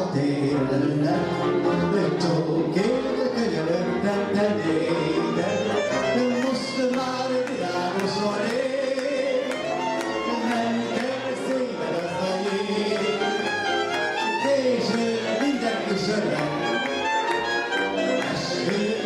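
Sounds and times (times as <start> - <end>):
man singing into a microphone: 0.0 - 13.4, 14.2 - 17.0, 18.2 - 19.0
folk band of violins and clarinet: 0.0 - 19.0.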